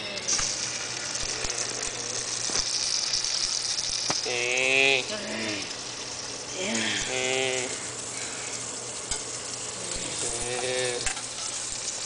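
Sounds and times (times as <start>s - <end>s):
meat sizzling in a frying pan: 0.0s - 12.0s
metal utensils clicking on pan: 9.0s - 9.4s, 10.4s - 11.9s.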